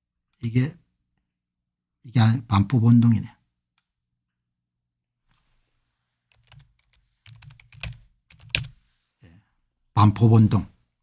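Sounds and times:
typing on computer keyboard: 0:06.3 - 0:08.8.

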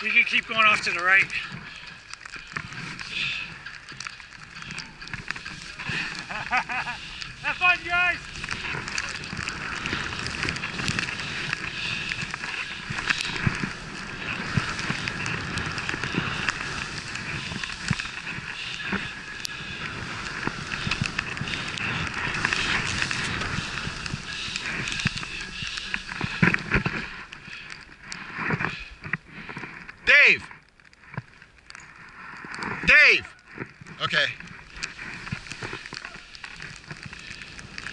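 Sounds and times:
skis rushing through snow: 0:00.0 - 0:30.4, 0:31.0 - 0:37.9.

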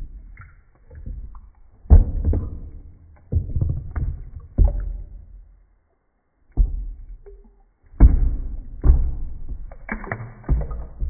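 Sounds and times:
water splashing and sloshing: 0:00.0 - 0:11.0.

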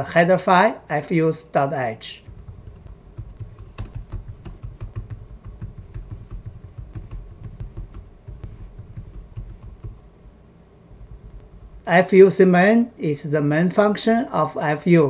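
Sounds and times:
typing on computer keyboard: 0:02.3 - 0:10.0.

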